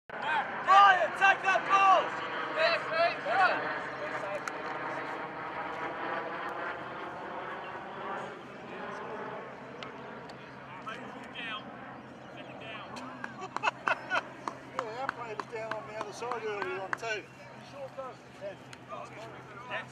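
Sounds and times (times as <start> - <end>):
steady droning hum: 0.2 - 19.9.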